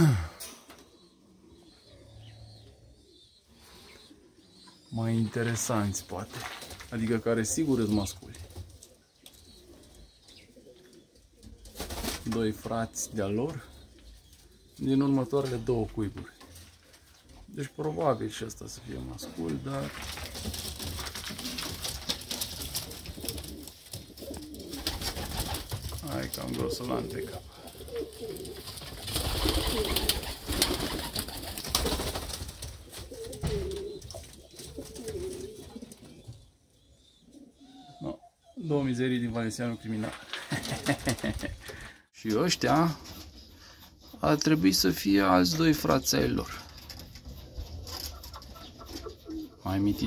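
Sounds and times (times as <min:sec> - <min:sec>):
pigeons cooing faintly: 0:00.0 - 0:50.0
pigeon cooing: 0:26.5 - 0:31.4, 0:33.0 - 0:38.6, 0:47.1 - 0:49.6.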